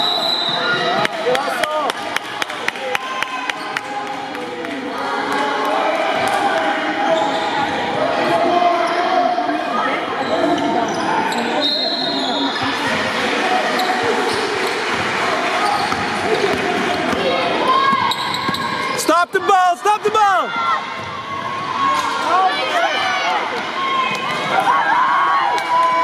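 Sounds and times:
shoes squeaking on floor: 0:15.6 - 0:16.2, 0:17.8 - 0:19.1.

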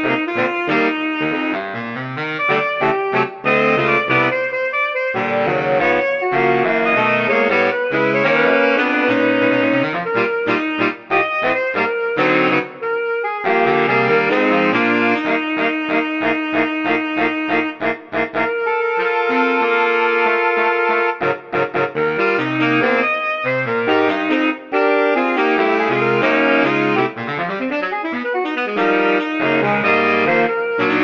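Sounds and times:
saxophone quartet playing jazz: 0:00.0 - 0:31.0.

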